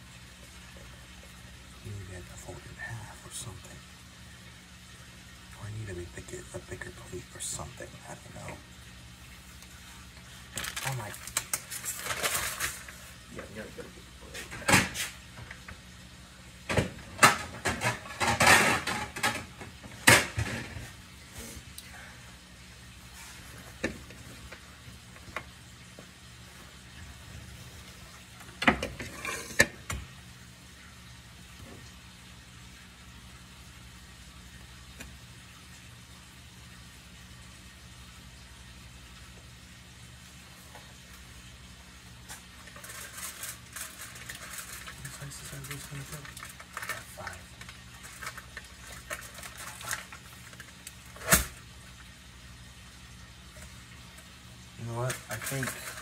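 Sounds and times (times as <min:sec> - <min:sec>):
dishes and utensils clattering: 0:17.2 - 0:19.5, 0:28.7 - 0:29.8.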